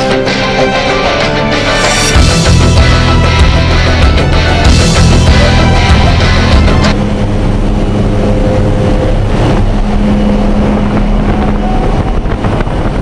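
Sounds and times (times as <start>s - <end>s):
airplane engine and propeller drone: 0.0s - 13.0s
wind rushing through open door: 6.9s - 13.0s.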